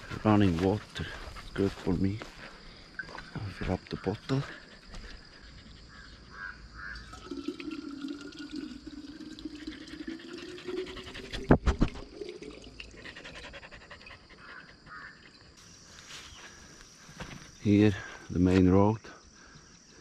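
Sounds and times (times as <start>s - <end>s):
water filling a bottle: 7.0s - 13.1s.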